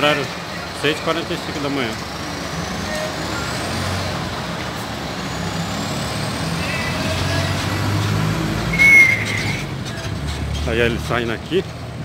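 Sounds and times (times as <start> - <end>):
bus diesel engine driving past: 0.0 - 12.0
short high-pitched squeal: 8.7 - 9.7.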